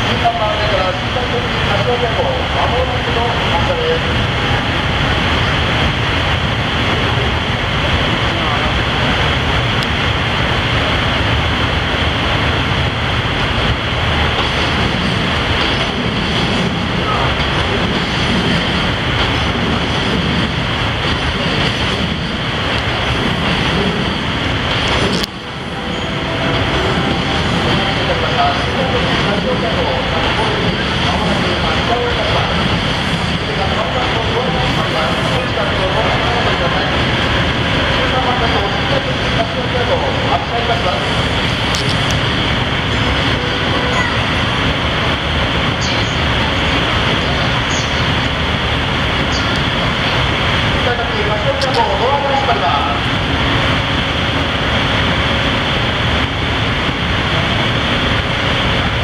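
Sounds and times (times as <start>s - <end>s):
indistinct voices: 0.0s - 57.6s
electric locomotive humming: 0.0s - 59.0s.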